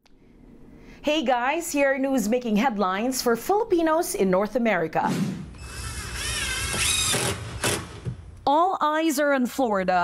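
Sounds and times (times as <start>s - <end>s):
cordless drill driving screw: 5.5s - 8.3s.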